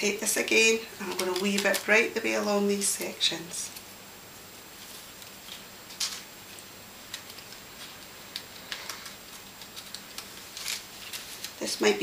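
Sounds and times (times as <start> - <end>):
faint steady hiss: 0.0 - 12.0
paper rustling and clicking: 1.0 - 2.0, 4.9 - 11.7.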